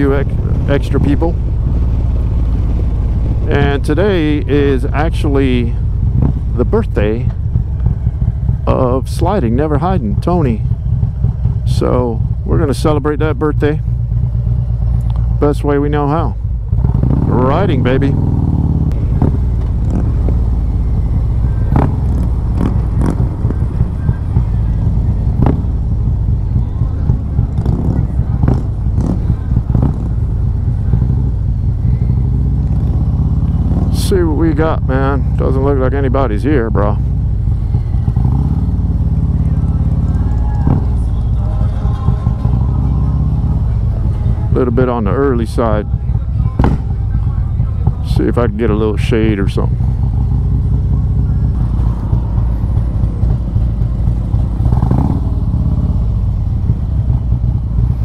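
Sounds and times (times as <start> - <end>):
motorcycle exhaust rumbling: 0.0 - 58.0
sharp exhaust cracks: 0.0 - 58.0.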